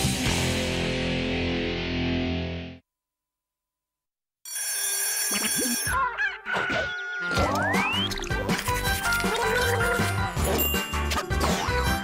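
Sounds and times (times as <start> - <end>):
cartoon sound effects: 5.4 - 8.5.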